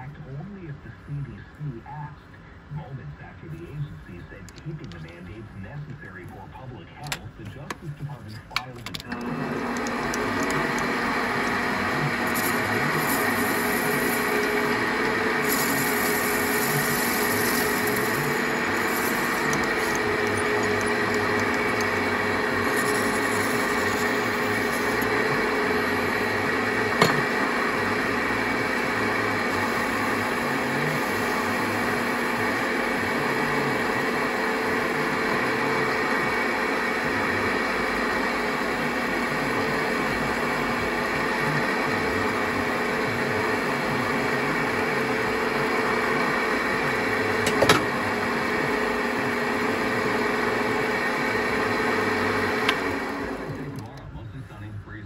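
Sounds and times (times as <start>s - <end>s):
metal lathe humming: 9.0s - 53.8s
file and abrasive cloth on spinning metal: 9.4s - 35.9s.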